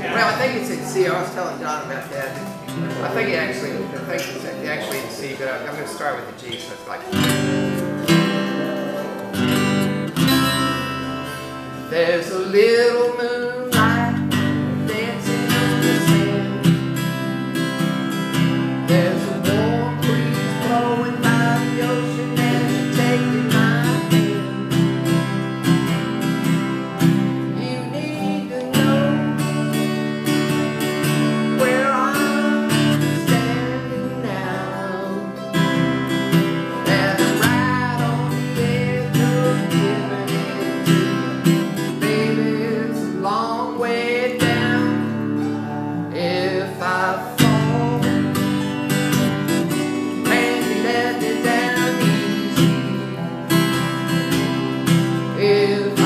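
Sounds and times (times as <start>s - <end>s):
acoustic guitars strummed: 0.0s - 56.0s
man singing country song: 0.0s - 56.0s.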